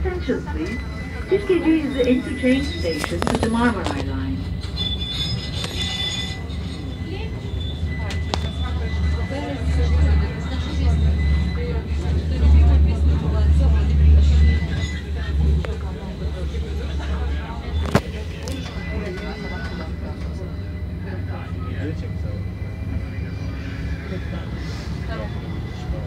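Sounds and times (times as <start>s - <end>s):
passengers murmuring: 0.0s - 26.0s
tram rumbling on rails: 0.0s - 26.0s.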